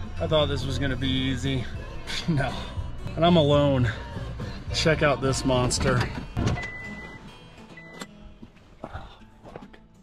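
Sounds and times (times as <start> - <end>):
faint background music: 0.0 - 10.0
truck door opening: 5.6 - 7.3.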